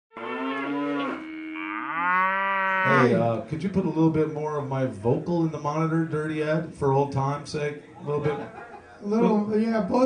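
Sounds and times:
cow mooing: 0.1s - 3.2s.

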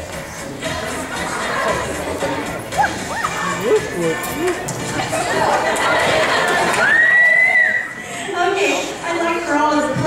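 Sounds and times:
background music: 0.0s - 10.0s
crowd chatter: 0.0s - 10.0s.

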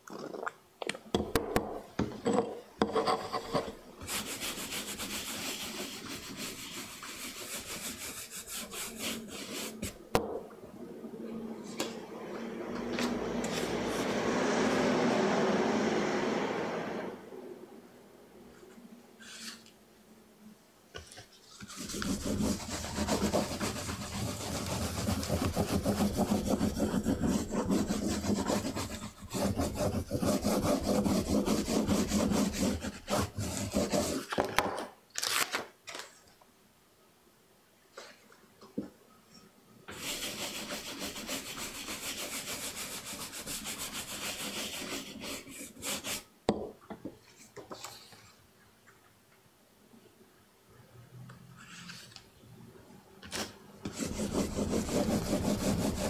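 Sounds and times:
baren rubbing on paper: 4.1s - 10.0s, 21.4s - 34.2s, 39.9s - 46.2s, 53.9s - 56.0s
brush scrubbing woodblock: 4.1s - 10.0s, 21.4s - 34.3s, 39.9s - 46.3s, 53.9s - 56.0s.

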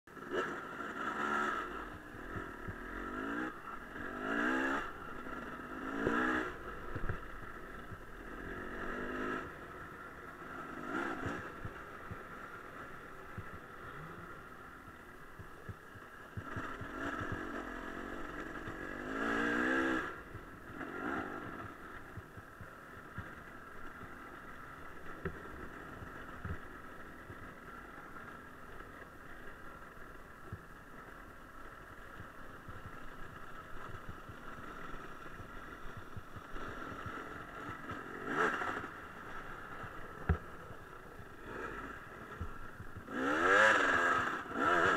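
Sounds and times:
dirt bike engines revving: 0.1s - 44.9s.

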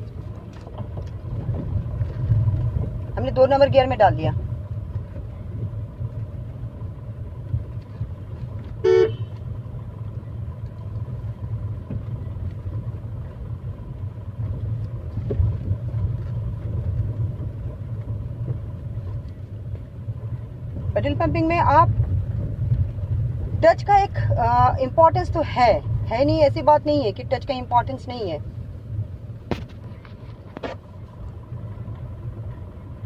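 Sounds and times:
car engine low rumble: 0.0s - 33.0s
car horn toot: 8.8s - 9.4s.

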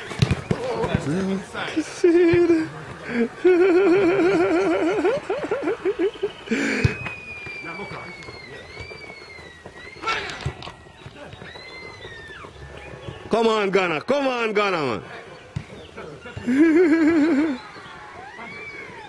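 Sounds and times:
high whistled tone: 6.0s - 13.0s.

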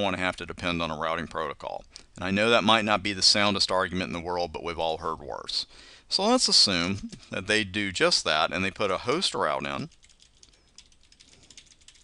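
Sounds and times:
computer keyboard typing: 9.7s - 12.0s.

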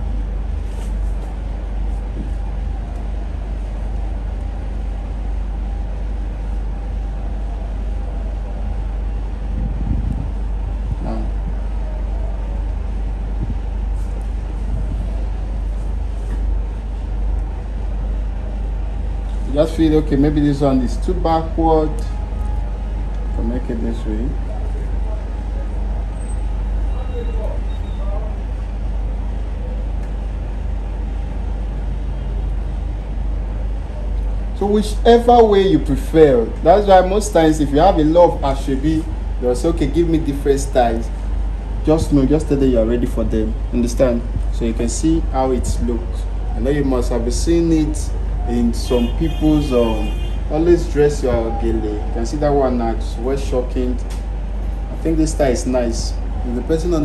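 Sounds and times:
low machinery rumble: 0.0s - 57.0s
faint indistinct voices: 10.3s - 21.2s, 21.9s - 30.6s.

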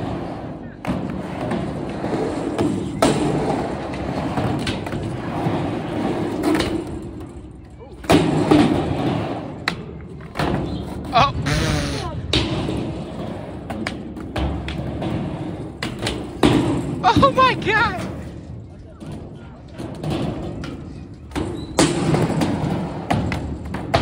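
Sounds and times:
skateboard slap: 0.0s - 7.1s, 8.0s - 18.3s, 19.0s - 24.0s
skateboard clacks and thuds: 0.0s - 7.4s, 8.0s - 24.0s
skateboard wheels rolling on ramp: 0.0s - 24.0s
person crying out: 11.2s - 12.2s.

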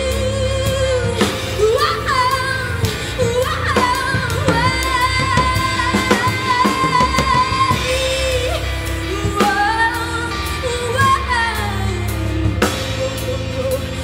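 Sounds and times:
steady drum beat: 0.0s - 14.0s
woman singing with live band: 0.0s - 14.0s.

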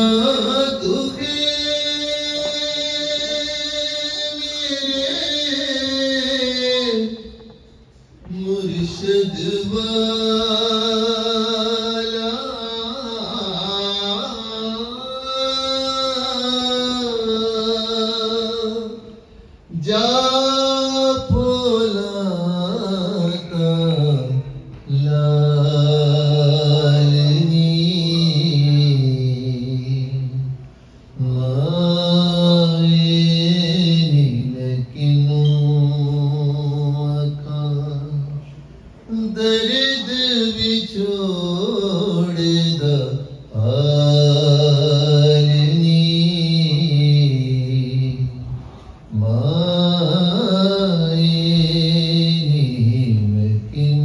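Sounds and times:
man singing chant-like: 0.0s - 7.6s, 8.2s - 30.6s, 31.2s - 38.5s, 39.1s - 54.0s.

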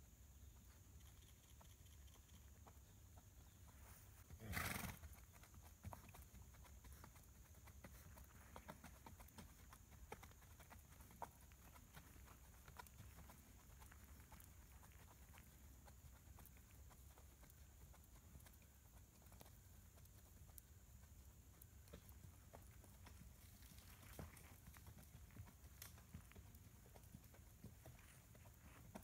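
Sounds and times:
horse hoofbeats on dirt: 0.0s - 29.0s
horse snorting: 4.3s - 5.1s.

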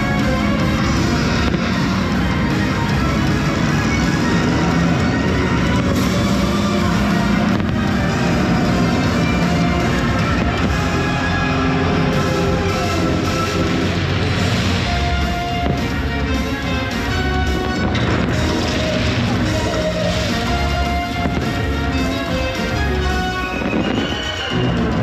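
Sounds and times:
fireworks bursting: 0.0s - 25.0s
orchestral music over loudspeakers: 0.0s - 25.0s
sharp firework bangs: 0.0s - 25.0s.

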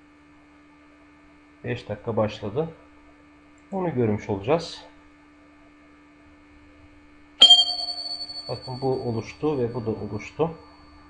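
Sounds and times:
electronic notification chime: 7.4s - 9.1s
faint steady hum: 7.4s - 11.0s.

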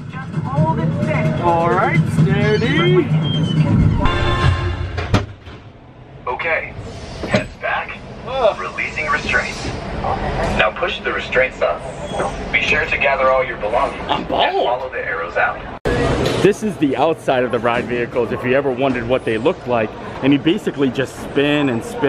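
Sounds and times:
voices: 6.3s - 15.8s.

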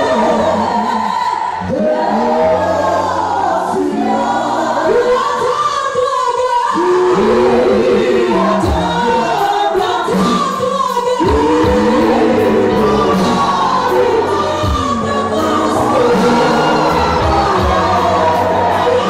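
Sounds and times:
choir singing through pa: 0.0s - 19.0s.

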